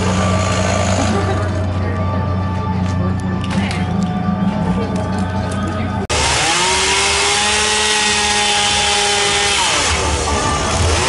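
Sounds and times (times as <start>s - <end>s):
background music: 0.0s - 11.0s
voices: 0.2s - 6.1s
chainsaw cutting wood: 6.1s - 11.0s.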